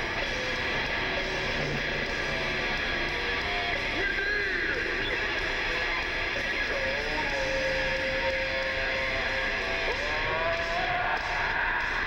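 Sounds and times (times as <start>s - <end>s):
distorted electric guitar: 0.0s - 12.0s
heavy metal band playing: 0.0s - 12.0s.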